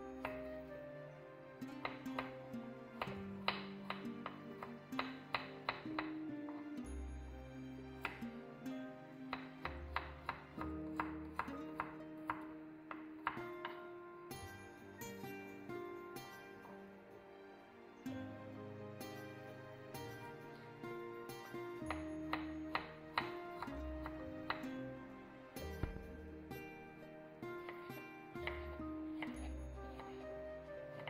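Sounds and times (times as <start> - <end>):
background music: 0.0 - 31.0
knife chopping on wooden board: 25.7 - 26.1.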